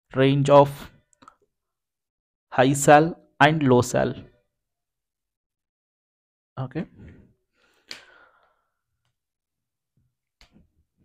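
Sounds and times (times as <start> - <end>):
faint breath: 7.0 - 8.8.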